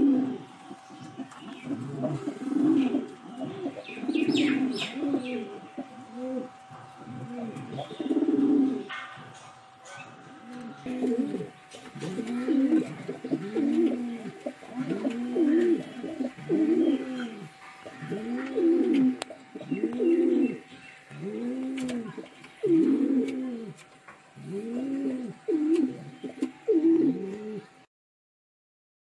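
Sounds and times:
pigeon cooing: 0.0 - 27.9.

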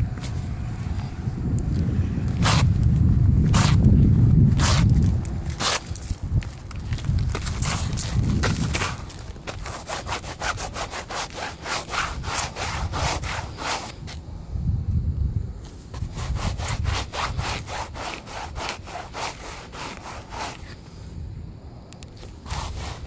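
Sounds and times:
sneakers scraping on concrete: 0.0 - 14.2.

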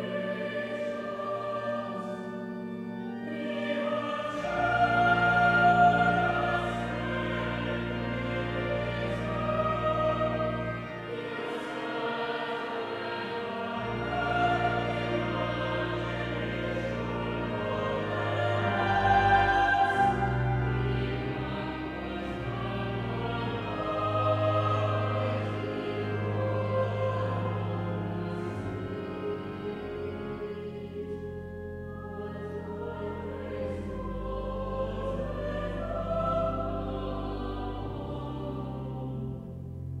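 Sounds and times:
choir singing sustained chords: 0.0 - 40.0.

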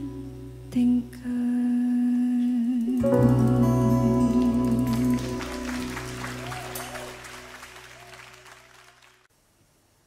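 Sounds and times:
live band holding chord: 3.0 - 8.6
audience applause: 4.4 - 9.3.

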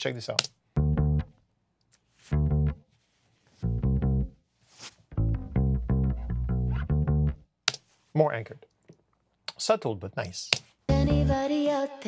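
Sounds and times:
electric bass guitar notes: 0.8 - 1.4, 2.3 - 2.8, 3.6 - 4.4, 5.1 - 7.4, 10.9 - 11.4.

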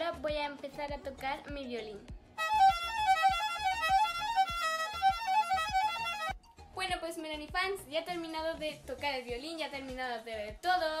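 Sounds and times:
violin playing quick high notes: 2.4 - 6.4.

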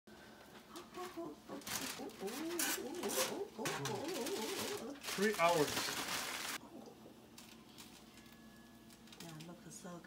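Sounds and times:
aluminium foil crinkling: 0.7 - 6.6, 7.3 - 9.6.

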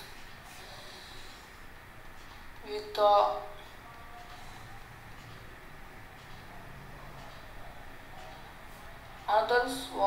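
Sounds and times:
person breathing: 0.4 - 1.7.

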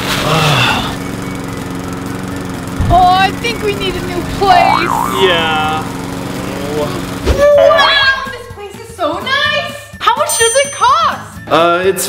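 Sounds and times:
lawn mower engine running: 0.0 - 9.1.

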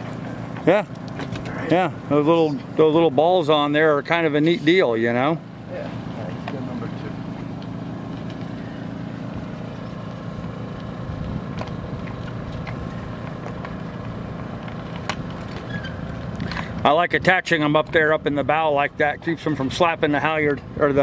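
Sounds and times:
low engine hum: 0.0 - 21.0.

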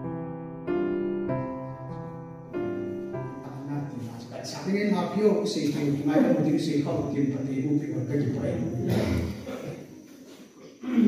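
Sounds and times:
man speaking through a microphone: 3.5 - 9.8.

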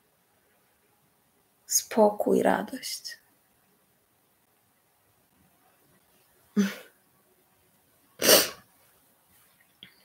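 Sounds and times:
woman sneezing: 6.6 - 6.9, 8.2 - 8.6.

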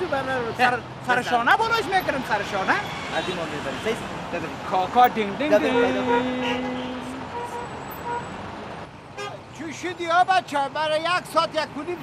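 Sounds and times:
passing cars: 0.0 - 12.0.

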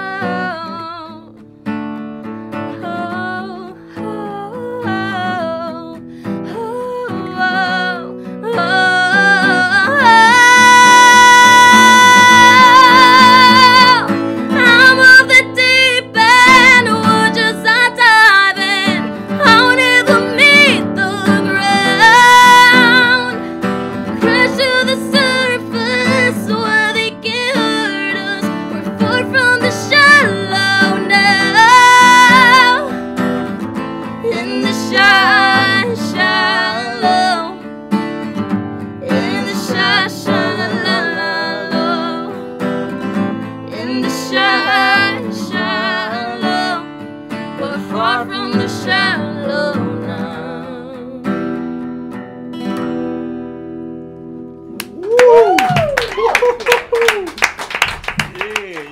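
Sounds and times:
strummed acoustic guitar: 0.0 - 54.9
woman singing high notes: 2.8 - 18.8.

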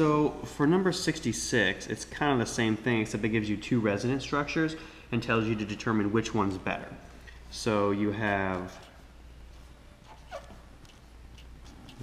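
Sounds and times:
low steady hum: 0.0 - 12.0
marker squeaking on paper: 8.3 - 12.0.

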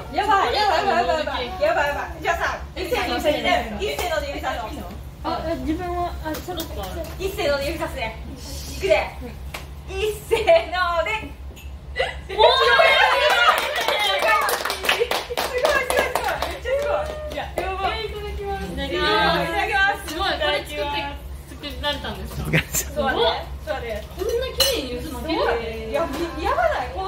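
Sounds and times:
women exclaiming and laughing: 12.0 - 14.4.

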